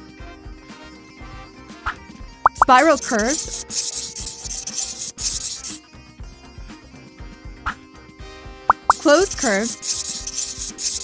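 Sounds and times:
light background music: 0:00.0 - 0:11.0
cartoon pencil scribbling: 0:02.5 - 0:05.8, 0:08.7 - 0:11.0.

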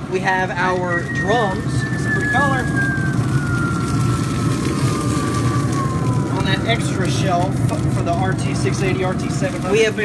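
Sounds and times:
low rumbling hum: 0:00.0 - 0:10.0
thin whistling tone falling: 0:00.8 - 0:06.9.

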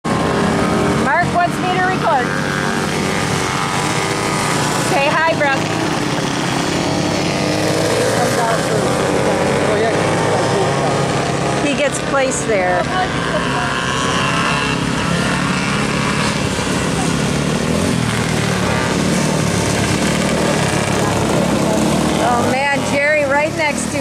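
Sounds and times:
small racing engines running: 0:00.0 - 0:24.0
voices: 0:00.2 - 0:24.0.

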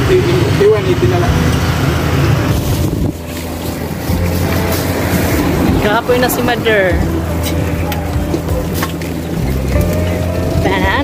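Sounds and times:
road traffic: 0:00.0 - 0:11.0
wind buffeting microphone: 0:02.0 - 0:11.0.

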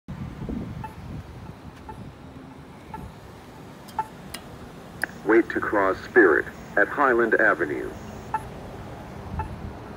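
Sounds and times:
wind on microphone: 0:00.1 - 0:03.2, 0:09.2 - 0:09.9
street noise: 0:00.1 - 0:09.9.

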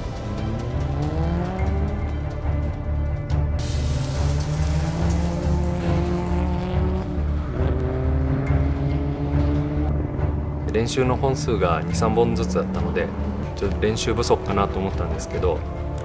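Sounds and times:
race car engine revving: 0:00.0 - 0:02.5, 0:03.6 - 0:16.0.

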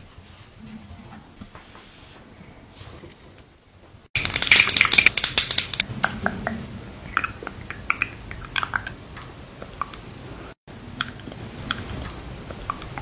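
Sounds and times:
brush crackling in sticky gel: 0:04.2 - 0:05.9.

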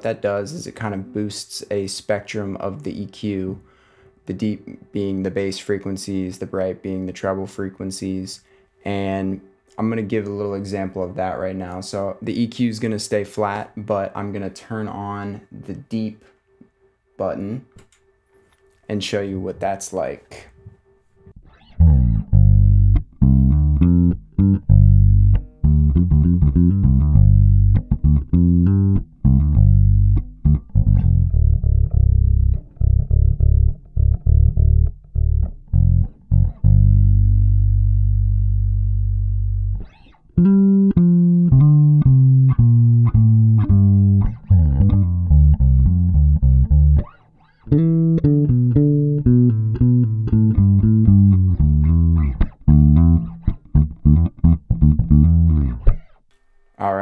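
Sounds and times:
electric bass plucked notes: 0:21.4 - 0:56.2.

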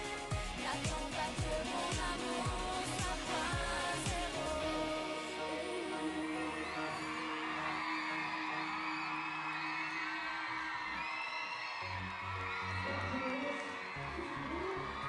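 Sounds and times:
pulsing low beat: 0:00.0 - 0:04.6
crowd screaming and whooping: 0:00.0 - 0:15.0
pop music: 0:00.0 - 0:15.0.

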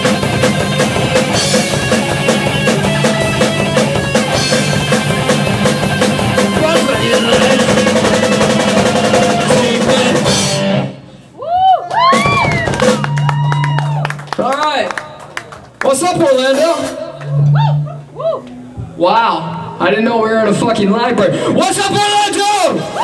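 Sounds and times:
live rock band playing: 0:00.0 - 0:11.3, 0:12.0 - 0:13.8.

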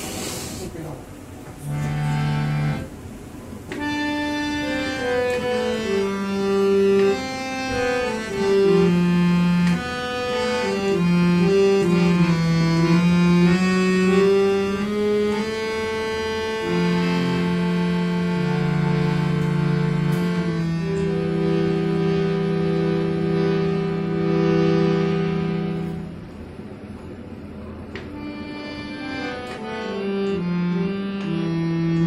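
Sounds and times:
harmonium playing slow melody: 0:01.5 - 0:32.0.

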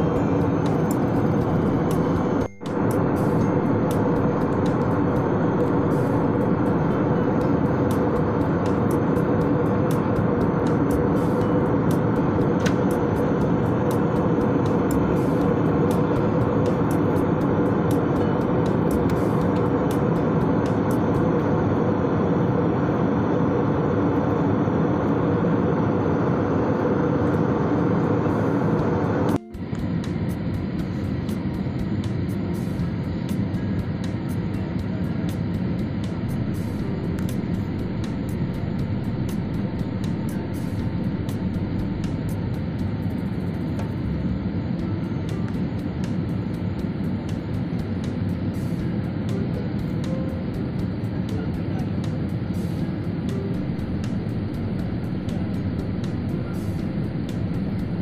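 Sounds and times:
faint steady hum: 0:00.0 - 0:58.0
jet airliner cabin noise: 0:00.0 - 0:58.0.

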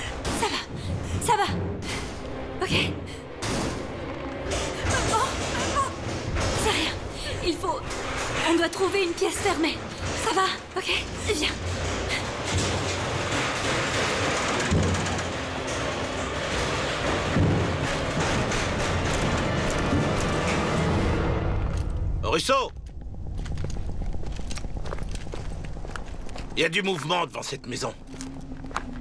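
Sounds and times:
dramatic film score: 0:00.0 - 0:29.0
low hum: 0:00.0 - 0:29.0.

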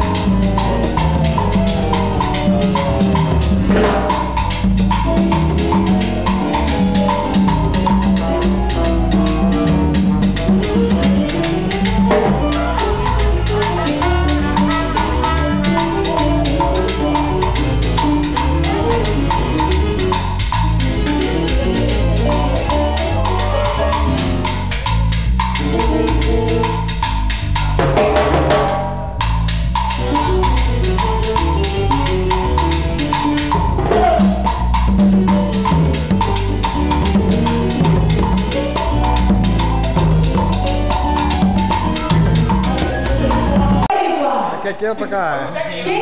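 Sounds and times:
synth keyboard: 0:00.0 - 0:27.5
drum kit: 0:00.0 - 0:44.1
congas: 0:00.0 - 0:46.0.

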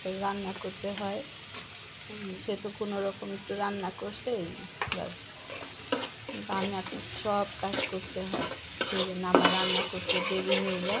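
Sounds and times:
masala sizzling in oil: 0:00.0 - 0:11.0
spatula scraping metal pan: 0:05.3 - 0:11.0.

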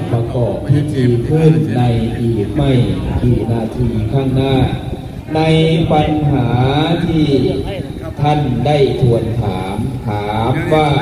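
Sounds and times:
monk chanting sermon over microphone: 0:00.0 - 0:11.0.

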